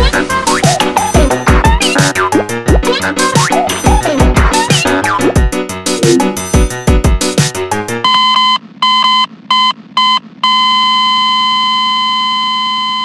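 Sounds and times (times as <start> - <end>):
electronic music beat: 0.0 - 8.0
electronic beeps: 8.0 - 13.0.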